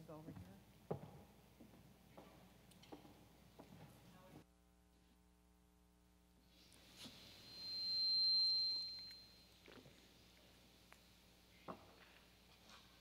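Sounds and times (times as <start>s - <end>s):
microphone feedback ringing: 7.2s - 9.9s.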